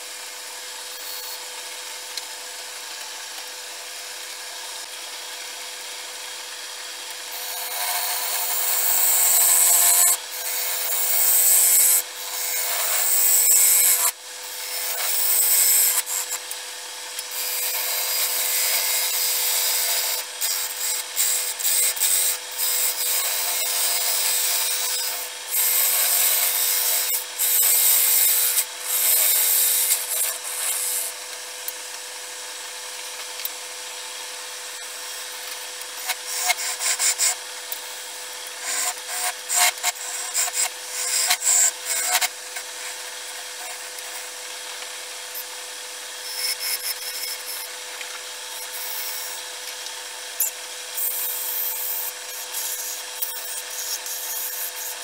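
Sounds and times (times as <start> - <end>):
wood lathe motor hum: 0.0 - 55.0
gouge cutting spinning wood: 5.8 - 31.7, 34.6 - 49.6.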